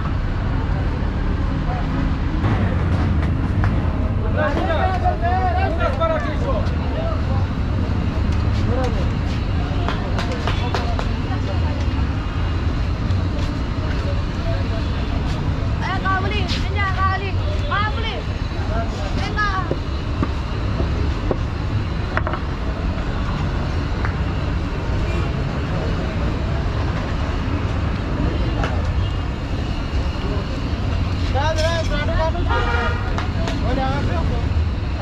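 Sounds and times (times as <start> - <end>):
low rumble of traffic: 0.0 - 35.0
people talking: 3.7 - 12.3, 13.0 - 20.0, 25.1 - 35.0.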